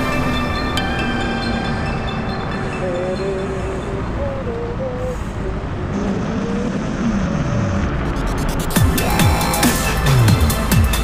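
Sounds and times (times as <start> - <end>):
passing vehicle engine: 0.0 - 11.0
wind and road noise: 0.0 - 11.0.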